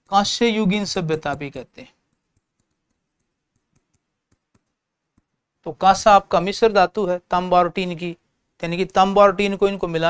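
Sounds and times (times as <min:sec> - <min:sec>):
marker clicks on whiteboard: 0:00.0 - 0:05.4.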